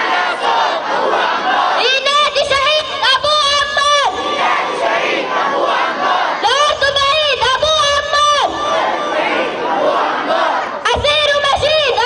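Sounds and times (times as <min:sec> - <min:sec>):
crowd noise: 0:00.0 - 0:12.0
crowd shouting a chant: 0:00.0 - 0:12.0.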